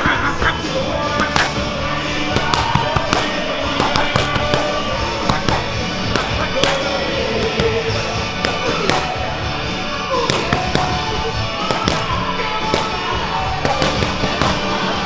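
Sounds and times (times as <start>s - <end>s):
background music: 0.0s - 15.0s
punches smacking into focus mitts: 2.3s - 9.2s, 10.2s - 13.0s, 13.6s - 14.7s.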